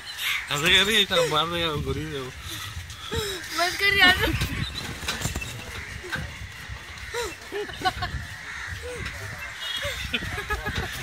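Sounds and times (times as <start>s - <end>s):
crows cawing: 0.0s - 11.0s
low street noise: 0.0s - 11.0s.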